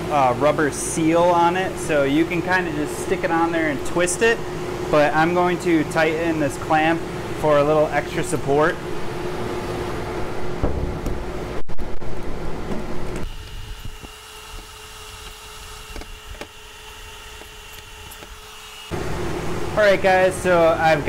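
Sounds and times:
duct fan whooshing hum: 0:00.0 - 0:21.0.

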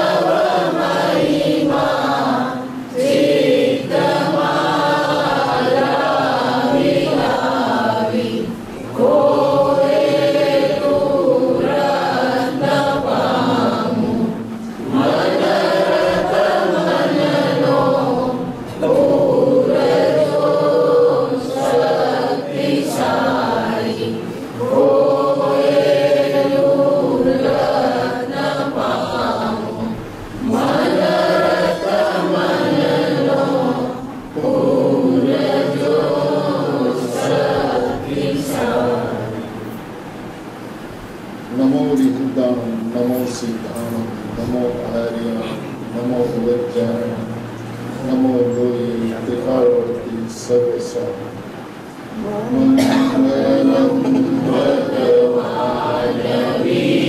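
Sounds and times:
group chanting prayer in unison: 0:00.0 - 0:57.0.

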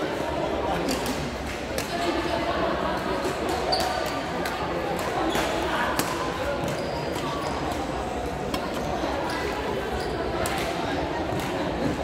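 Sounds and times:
murmur of voices in a hall: 0:00.0 - 0:12.0
sneaker squeak on court floor: 0:03.7 - 0:04.1, 0:06.6 - 0:07.8, 0:09.3 - 0:10.4.

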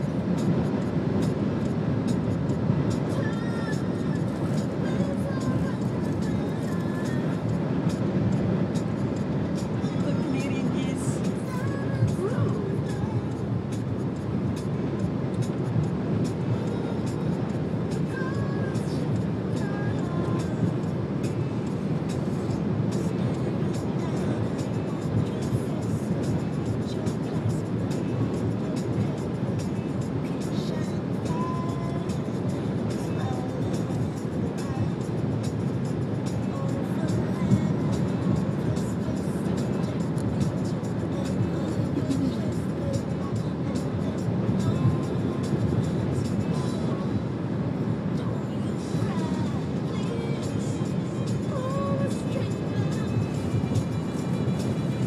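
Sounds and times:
car road and engine noise: 0:00.0 - 0:55.0
music playing: 0:00.0 - 0:55.0.

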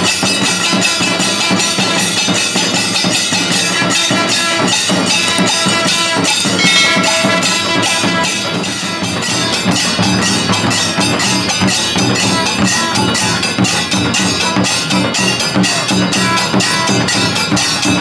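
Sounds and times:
brass hand cymbals ringing: 0:00.0 - 0:18.0
drums beaten with sticks: 0:00.0 - 0:18.0.

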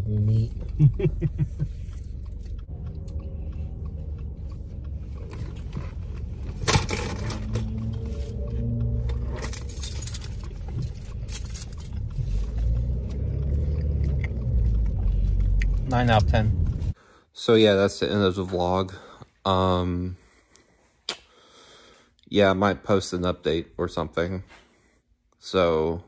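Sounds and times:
car interior rumble: 0:00.0 - 0:17.0.

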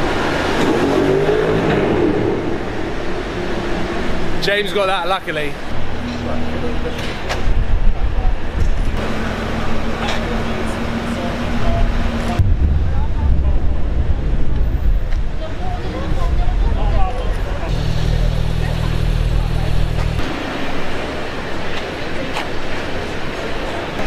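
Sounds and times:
sports car engines revving: 0:00.0 - 0:12.4, 0:17.3 - 0:23.9
street noise: 0:00.0 - 0:24.0
people's voices: 0:04.4 - 0:24.0
car engine idling: 0:17.6 - 0:21.6.

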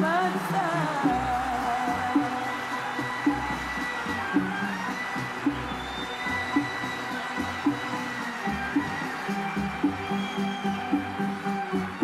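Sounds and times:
drum pattern: 0:00.4 - 0:12.0
orchestral music: 0:02.3 - 0:12.0.

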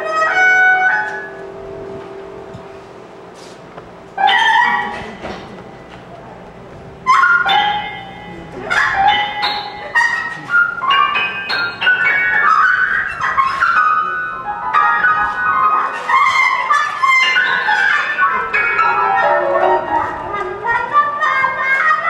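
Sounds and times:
grand piano: 0:00.0 - 0:22.0.

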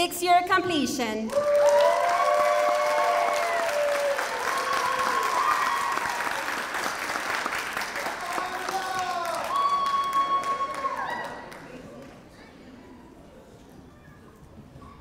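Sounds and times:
crowd cheering: 0:01.3 - 0:11.8
audience applauding: 0:01.3 - 0:12.2.

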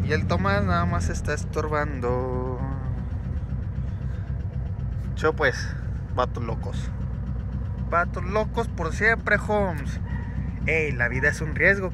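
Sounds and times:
car engine idling: 0:00.0 - 0:11.9.

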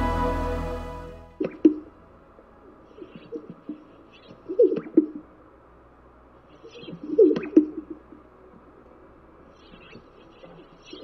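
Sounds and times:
background music: 0:00.0 - 0:06.3.

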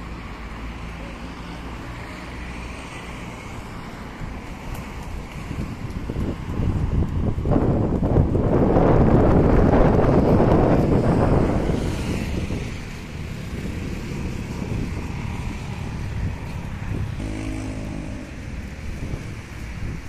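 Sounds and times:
vehicle noise: 0:00.0 - 0:20.0
wind buffeting microphone: 0:04.2 - 0:20.0
low engine hum: 0:09.8 - 0:20.0.

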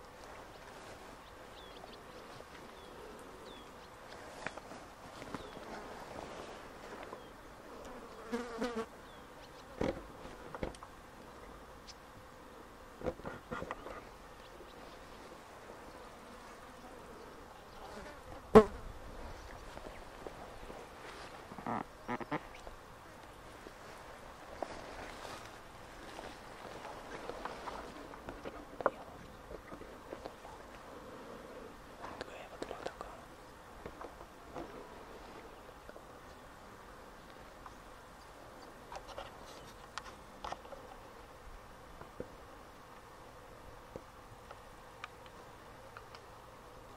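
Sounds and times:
flying insect buzzing: 0:07.8 - 0:10.0
man whispering: 0:32.0 - 0:33.4.

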